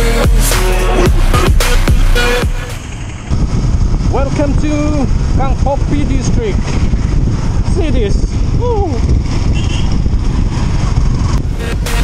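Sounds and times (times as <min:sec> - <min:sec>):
electronic music: 0:00.0 - 0:03.0, 0:11.5 - 0:12.0
motorcycle engine rumble: 0:00.0 - 0:12.0
wind noise: 0:01.0 - 0:12.0.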